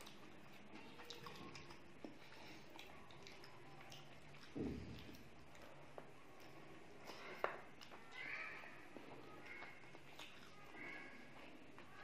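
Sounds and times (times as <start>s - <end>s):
chewing: 0.0s - 12.0s.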